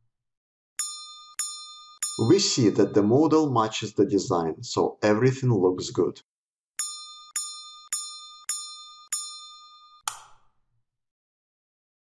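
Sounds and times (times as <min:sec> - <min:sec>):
synthesized bell chime: 0:00.8 - 0:03.3, 0:06.8 - 0:10.0.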